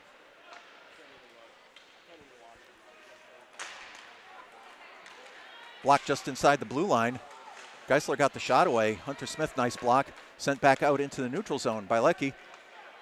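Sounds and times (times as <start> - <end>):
hockey sticks and puck clicks: 0.1 - 2.3, 3.5 - 8.6, 9.2 - 13.0.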